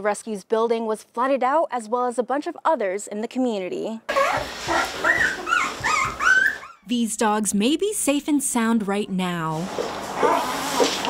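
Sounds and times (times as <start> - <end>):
puppies whimpering: 4.1 - 6.8.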